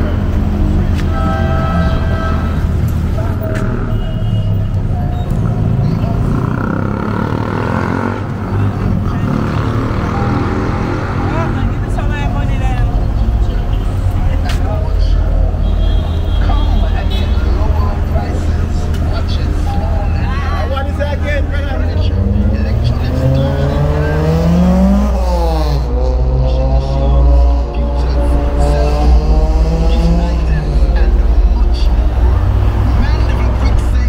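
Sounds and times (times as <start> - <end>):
car engines rumbling: 0.0 - 34.0
voices: 0.0 - 34.0
vehicle accelerating past: 5.3 - 14.1, 21.8 - 34.0.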